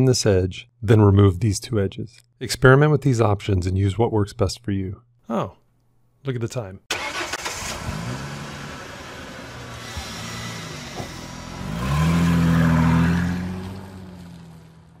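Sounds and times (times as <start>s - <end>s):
car engine starting and revving: 6.9s - 15.0s.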